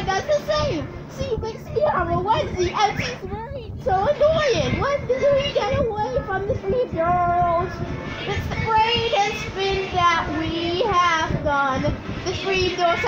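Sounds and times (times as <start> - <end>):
children singing on tv speaker: 0.0 - 13.0.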